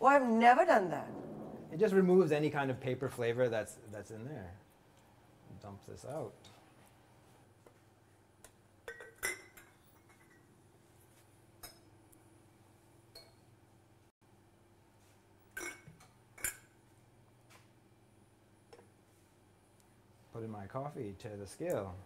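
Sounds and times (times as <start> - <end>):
low steady hum: 0.0 - 7.2
ceramic and glass clinking on counter: 8.9 - 10.5.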